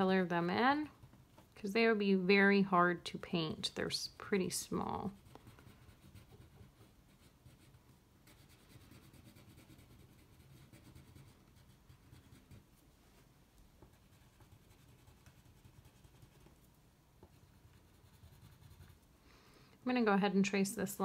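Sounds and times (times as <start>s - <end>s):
crayon scratching on paper: 5.0s - 12.6s, 13.9s - 16.6s, 17.3s - 19.0s.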